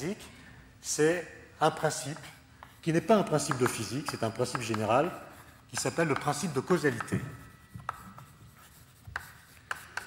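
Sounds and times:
chalk scratching on blackboard: 1.9 - 10.0.

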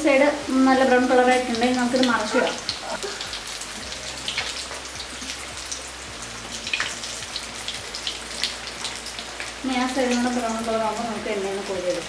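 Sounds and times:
food deep-frying in oil: 0.0 - 12.0.

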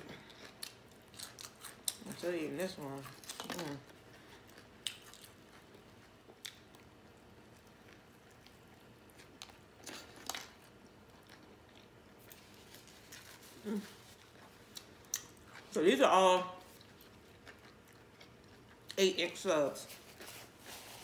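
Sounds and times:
chewing sandwich: 0.0 - 15.8, 16.6 - 21.0.

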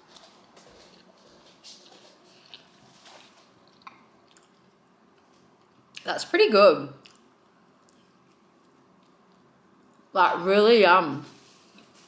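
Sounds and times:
faint chewing: 0.0 - 6.1, 7.0 - 10.1.

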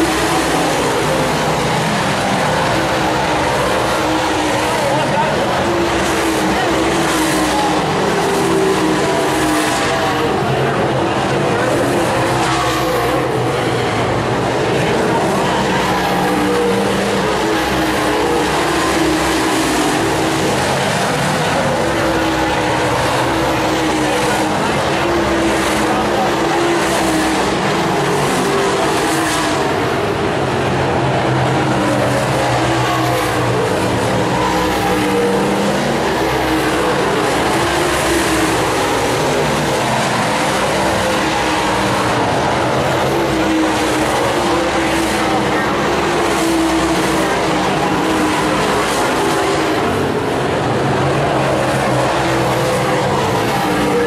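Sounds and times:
race car engines roaring past: 0.0 - 54.0.

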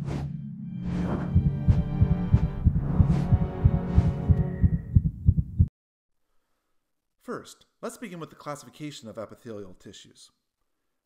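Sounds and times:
swooshing sweep: 0.0 - 4.7
low drone: 0.0 - 4.8
pulsing low thuds: 0.8 - 5.7.

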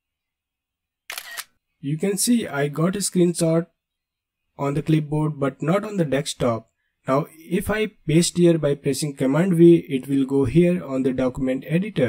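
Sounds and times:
camera-shutter click: 1.1 - 1.6.

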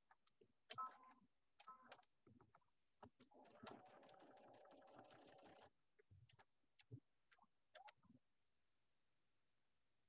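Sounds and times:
sewing machine stitching: 3.0 - 5.7.

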